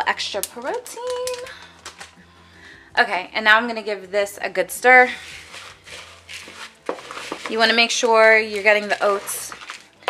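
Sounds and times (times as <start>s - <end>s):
spatula stirring dry mix in bowl: 4.8s - 10.0s.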